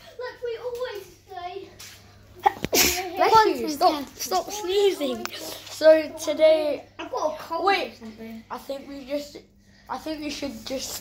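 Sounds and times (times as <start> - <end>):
boy sneezing: 2.4 - 3.2.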